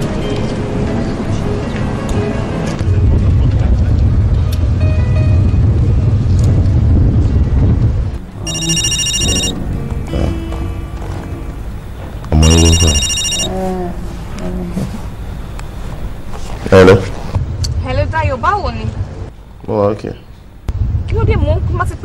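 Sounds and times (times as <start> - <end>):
telephone ringing: 8.5 - 9.6, 12.4 - 13.5
bass-heavy music: 12.3 - 13.1.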